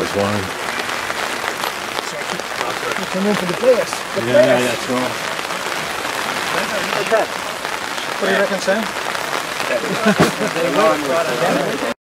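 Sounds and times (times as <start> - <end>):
steady background hiss: 0.0 - 11.9
players calling out: 0.0 - 12.0.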